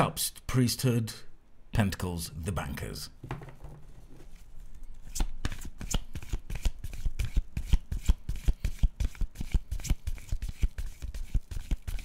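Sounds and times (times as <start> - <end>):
cards being shuffled: 4.1 - 12.0.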